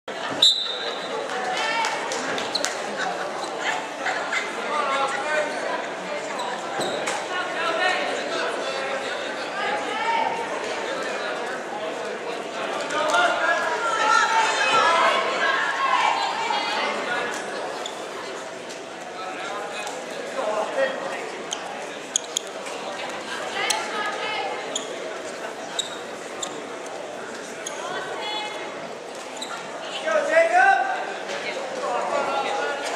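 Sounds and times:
shouting voices in echoing gym: 0.1 - 11.4, 12.6 - 18.2, 19.6 - 25.1, 27.5 - 32.9
referee's whistle: 0.4 - 1.0
scattered voices echoing: 19.3 - 28.9
shoes squeaking on mat: 21.5 - 22.7, 24.6 - 26.7, 27.6 - 27.9, 29.2 - 29.7.

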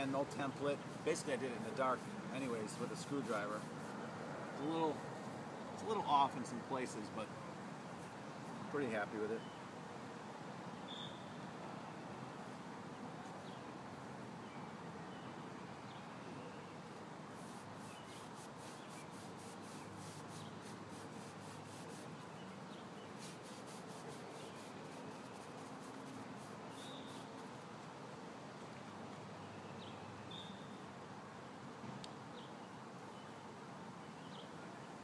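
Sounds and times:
faint outdoor hiss: 0.0 - 35.0
paintbrush scrubbing concrete: 0.3 - 4.0, 17.3 - 27.5.

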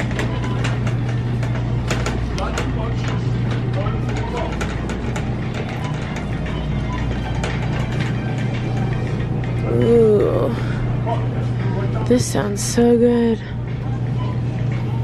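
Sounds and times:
shopping cart rattling: 0.0 - 9.8
faint background music: 0.0 - 15.0
low store hum: 0.0 - 15.0.

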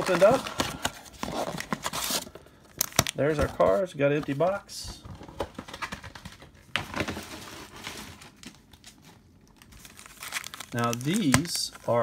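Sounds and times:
foil packs crinkling: 0.0 - 3.6, 5.6 - 12.0.

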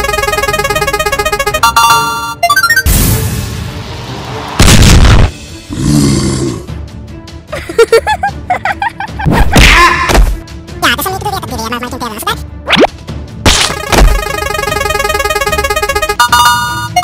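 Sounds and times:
prize wheel ticking: 0.0 - 2.8, 13.7 - 17.0
music: 0.0 - 17.0
loud crashes: 2.9 - 5.5.

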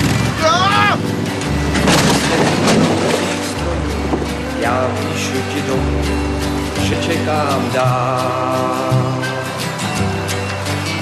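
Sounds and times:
song instrumental backing: 0.0 - 11.0
lawn mower crash and splash: 1.6 - 4.2.

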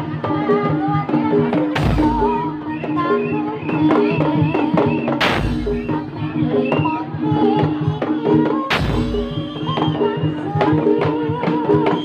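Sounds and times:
barrel drums beating: 1.6 - 2.6, 5.0 - 6.8, 8.6 - 12.0
deep booming drum stroke: 1.8 - 2.5, 5.1 - 6.3, 8.7 - 10.0.

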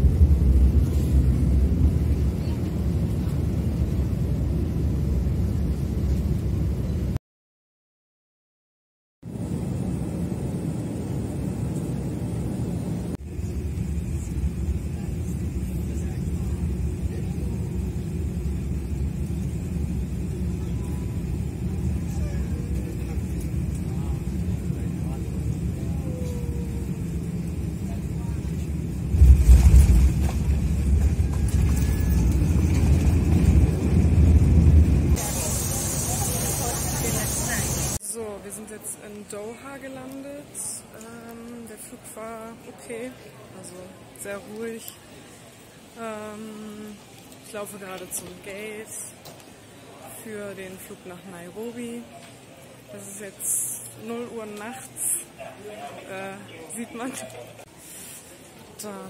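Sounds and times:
airliner cabin rumble: 0.0 - 7.2, 9.3 - 38.0
bright hiss: 35.2 - 38.0.

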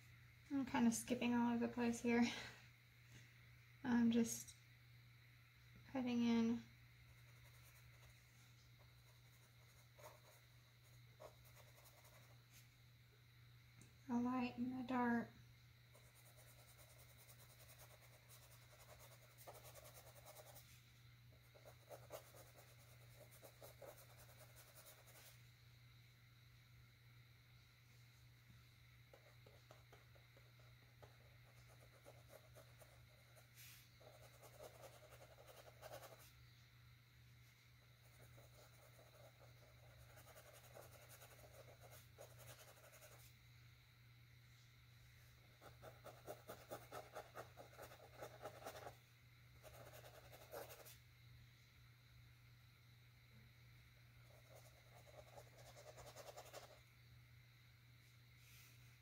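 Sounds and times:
paintbrush strokes on canvas: 15.9 - 20.8, 31.5 - 36.4, 38.2 - 43.4, 49.6 - 51.0.

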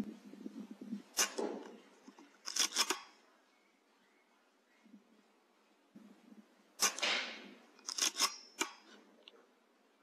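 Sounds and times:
air rifle shot: 6.8 - 7.6.

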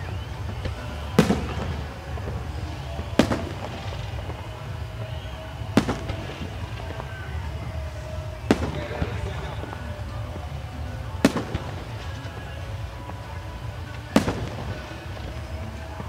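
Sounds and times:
firework shells bursting: 0.2 - 16.0.

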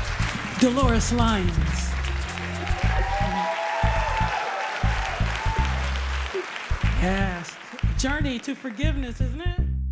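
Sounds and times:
audience applauding: 0.0 - 9.2
music with deep bass line: 0.0 - 9.9.

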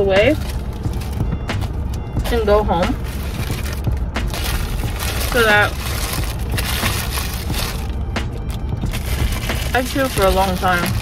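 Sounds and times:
low steady rumble: 0.0 - 11.0
paper wrapper crinkling: 3.0 - 11.0.

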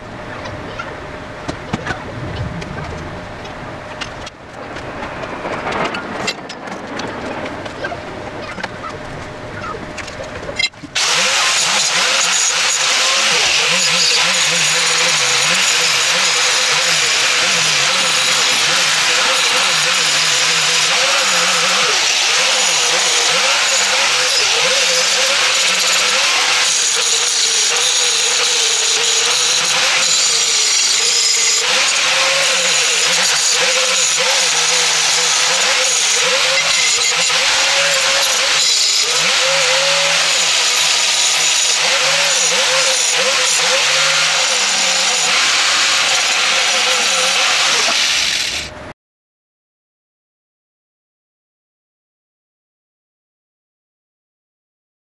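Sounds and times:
angle grinder grinding steel: 10.6 - 48.8.

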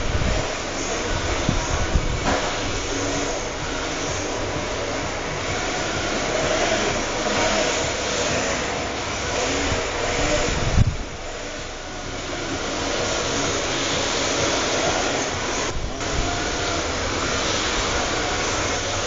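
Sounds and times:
electric motor whine: 0.0 - 19.0.

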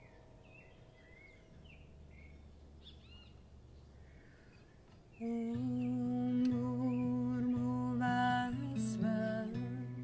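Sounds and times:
faint bird chirps: 0.0 - 9.0.

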